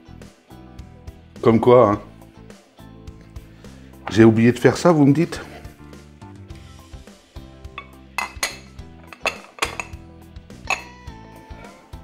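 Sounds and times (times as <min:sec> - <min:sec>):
soft background music: 0:00.0 - 0:12.0
knife clinking on porcelain ramekin: 0:07.8 - 0:10.0, 0:10.6 - 0:11.1.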